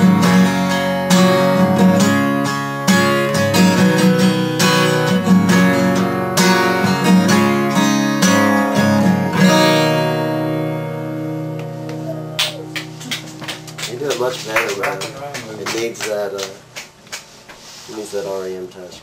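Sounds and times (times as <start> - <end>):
acoustic guitar strumming: 0.0 - 17.6.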